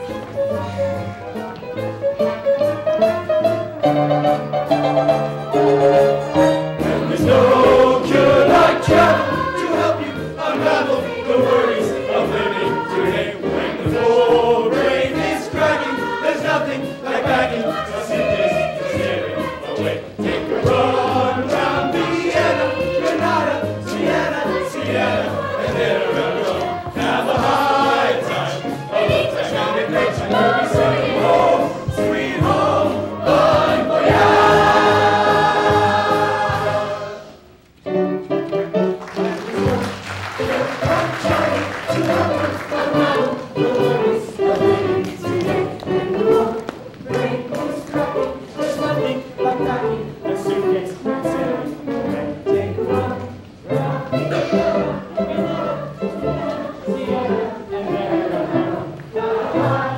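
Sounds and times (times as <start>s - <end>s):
instrumental accompaniment: 0.0s - 59.9s
ensemble singing chorus: 5.1s - 37.6s, 39.1s - 59.9s.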